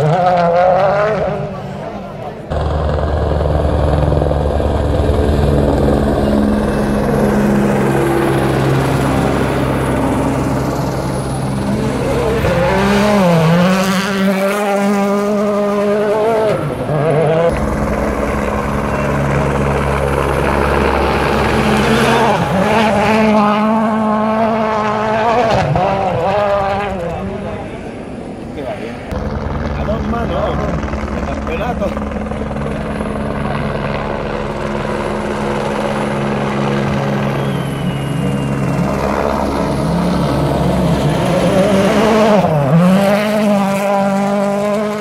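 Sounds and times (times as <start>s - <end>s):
rally car engine at high revs: 0.0s - 27.6s, 36.3s - 45.0s.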